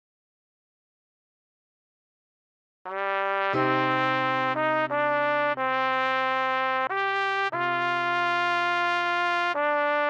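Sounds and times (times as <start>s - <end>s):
low trumpet note: 3.0s - 10.0s.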